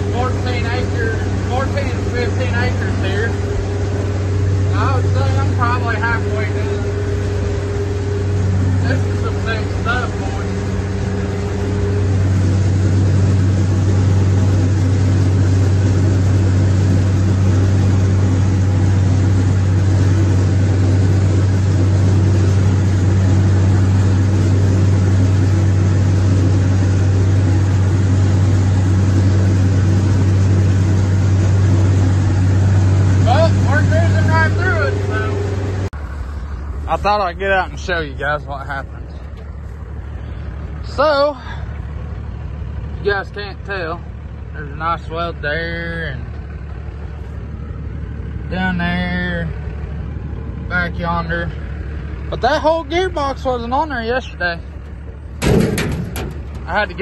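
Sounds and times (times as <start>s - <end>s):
tractor diesel engine under load: 0.0s - 57.0s.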